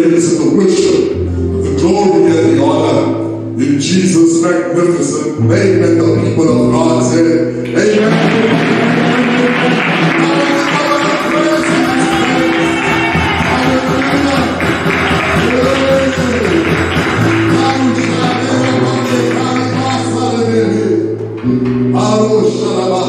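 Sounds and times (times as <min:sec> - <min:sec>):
held keyboard chords: 0:00.0 - 0:23.0
percussion: 0:07.7 - 0:20.4.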